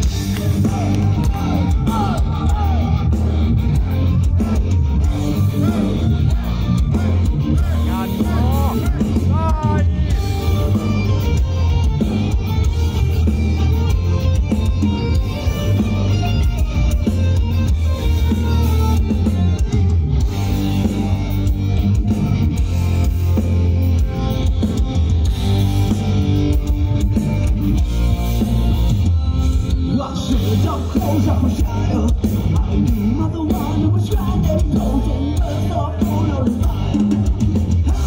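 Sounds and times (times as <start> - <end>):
metal band playing live: 0.0 - 38.0.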